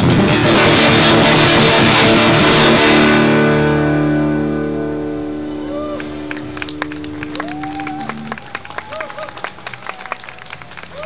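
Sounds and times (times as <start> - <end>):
audience applauding: 6.0 - 11.0.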